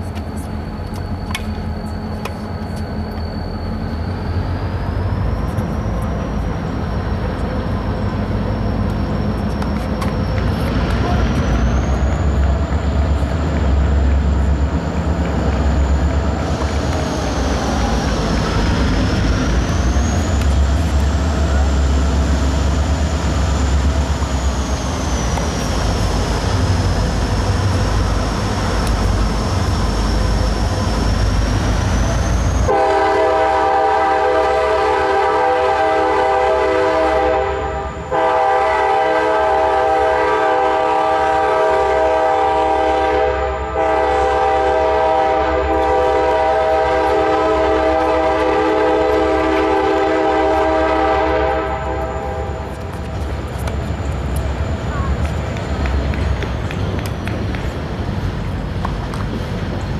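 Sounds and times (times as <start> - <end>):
loud horn chord: 32.7 - 52.5.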